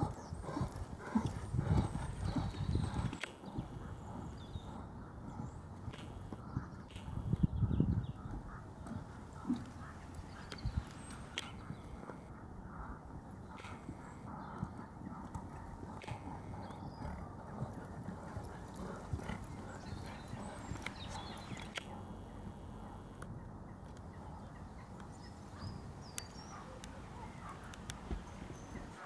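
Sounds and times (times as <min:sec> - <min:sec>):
horse hoofbeats on sand: 0:00.0 - 0:12.2, 0:13.4 - 0:21.7
sharp clicks: 0:03.1 - 0:03.4, 0:20.7 - 0:21.9.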